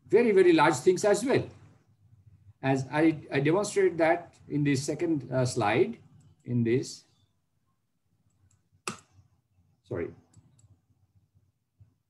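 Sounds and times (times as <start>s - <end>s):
computer mouse clicks: 10.2s - 10.8s.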